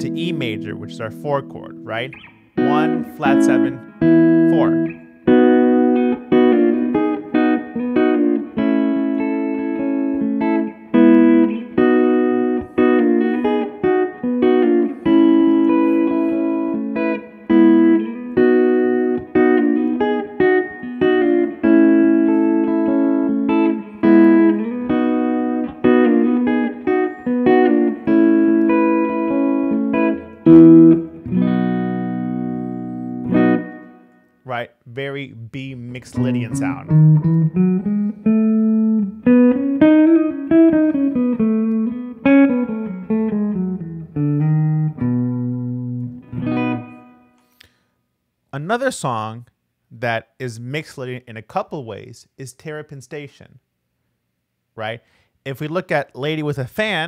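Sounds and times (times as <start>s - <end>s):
electric guitar chords: 0.0s - 34.5s, 35.9s - 47.9s.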